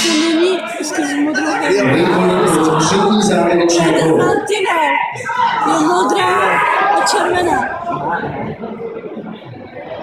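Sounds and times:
crowd chatter echoing in a hall: 0.0 - 10.0.

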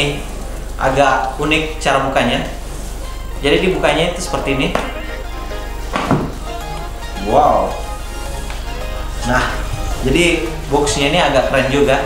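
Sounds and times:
background music: 0.0 - 12.0
box lid knock: 5.9 - 6.4.

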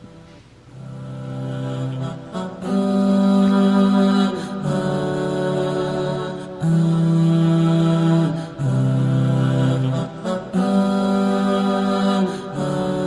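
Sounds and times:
voices singing long notes: 0.0 - 13.0.

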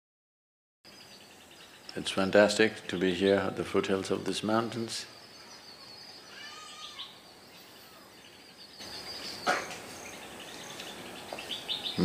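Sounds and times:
high-pitched bird trill: 5.4 - 12.0.

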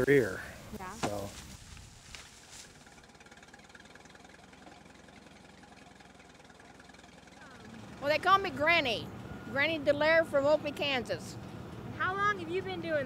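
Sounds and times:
tractor engine idling: 0.0 - 13.0.

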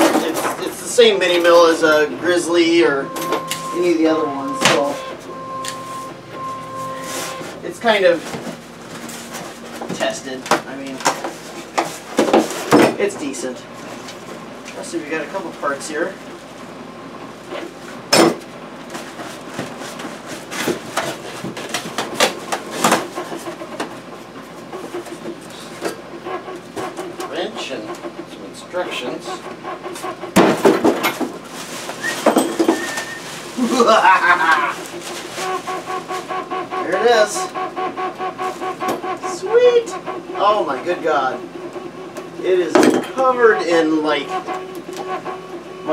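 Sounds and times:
parts knocking and clunking: 0.0 - 13.3, 17.5 - 33.1, 40.0 - 45.9
stepper motors humming whine: 0.0 - 18.8, 20.7 - 45.9
plastic wrapping rustling: 31.4 - 36.3.

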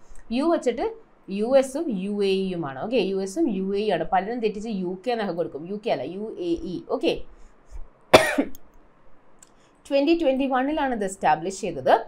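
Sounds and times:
woman coughing: 8.1 - 8.6.

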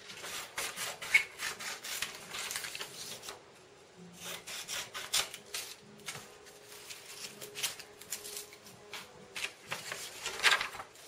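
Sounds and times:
scissors cutting paper: 0.0 - 3.4, 4.2 - 11.0.

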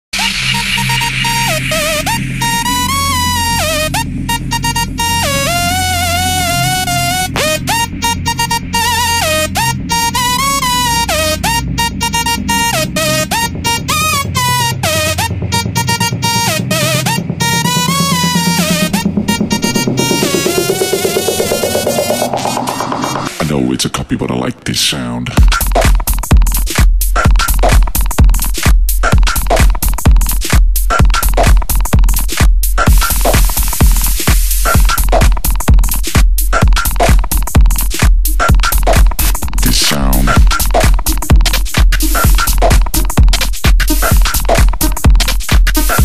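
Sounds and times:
rising synth sweep: 0.2 - 23.4
synthesizer lead melody: 0.2 - 23.6
bass line: 0.2 - 24.5, 25.2 - 46.0.

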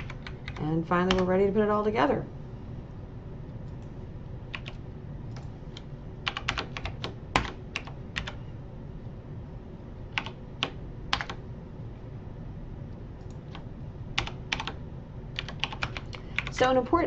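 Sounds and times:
typing on computer keyboard: 0.0 - 1.3, 4.5 - 4.8, 6.3 - 8.4, 10.2 - 11.4, 13.2 - 14.8, 15.4 - 16.6
low steady hum: 0.0 - 17.0.

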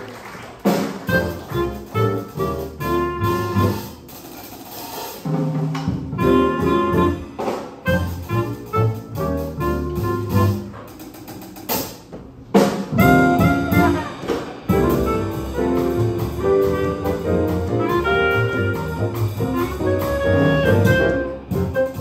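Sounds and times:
jazz band playing: 0.0 - 22.0
clarinet lead line: 1.1 - 4.0, 6.1 - 10.8, 13.0 - 22.0.

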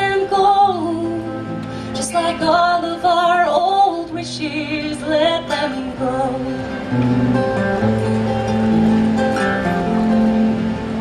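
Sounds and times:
woman singing: 0.0 - 6.8
acoustic guitar: 0.0 - 11.0.

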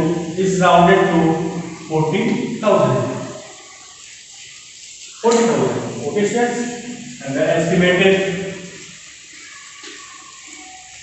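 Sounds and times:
man's voice: 0.0 - 3.3, 5.2 - 8.5
faint room hiss: 0.0 - 11.0.

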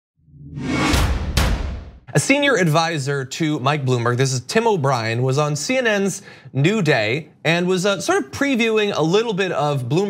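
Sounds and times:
whoosh: 0.2 - 2.1
sharp hits: 0.4 - 2.1.

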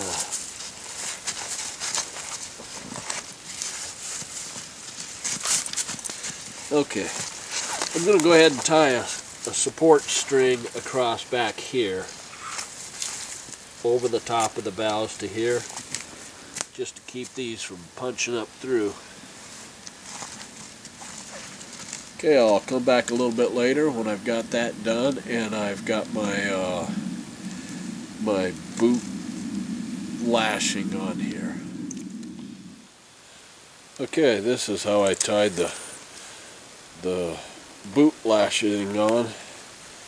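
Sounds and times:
spruce boughs rustling: 18.6 - 32.8.

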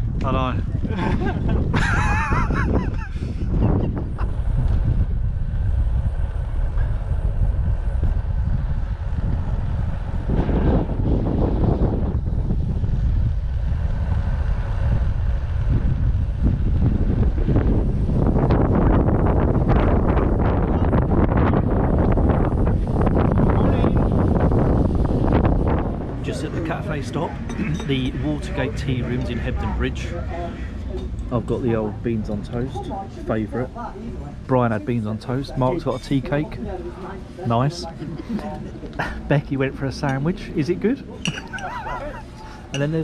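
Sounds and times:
wind rumbling on microphone: 0.0 - 43.0.

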